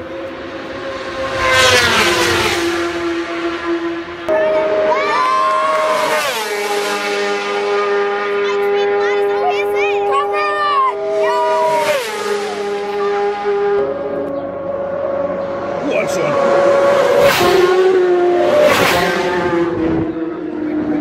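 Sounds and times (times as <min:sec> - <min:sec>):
racing motorcycle engines passing: 0:00.0 - 0:21.0.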